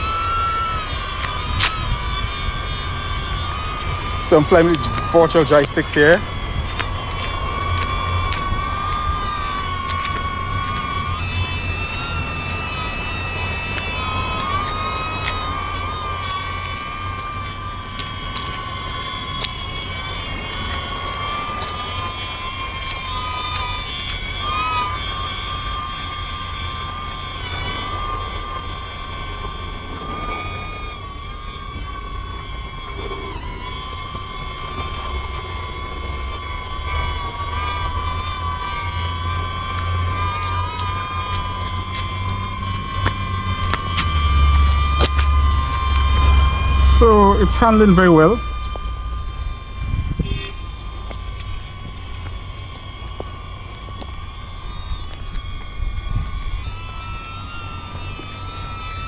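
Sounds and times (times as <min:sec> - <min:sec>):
drone propellers whining: 0:00.0 - 0:59.0.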